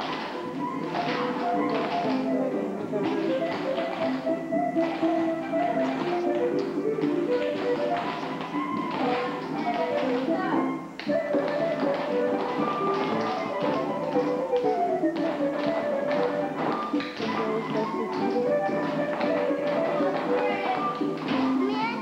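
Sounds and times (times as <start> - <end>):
dance shoes tapping wooden floor: 0.0 - 22.0
latin dance music: 0.0 - 22.0.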